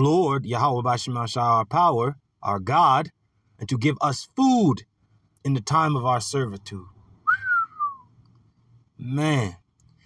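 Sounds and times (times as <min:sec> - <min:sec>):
man whistling downward slide: 0:07.3 - 0:08.1.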